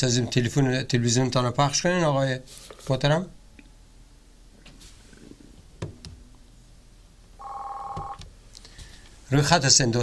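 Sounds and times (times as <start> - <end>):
telephone line tone: 7.4 - 8.2.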